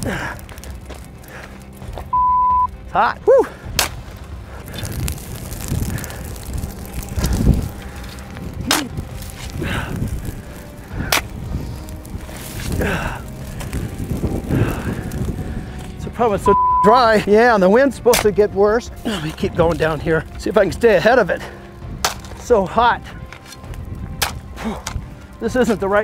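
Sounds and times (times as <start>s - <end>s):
shovels scraping dirt: 3.4s - 15.2s, 22.0s - 22.5s, 23.3s - 25.0s
wind on microphone: 4.0s - 16.6s.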